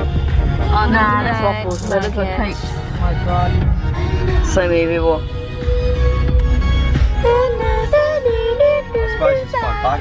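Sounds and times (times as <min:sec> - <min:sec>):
steady low bass: 0:00.0 - 0:10.0.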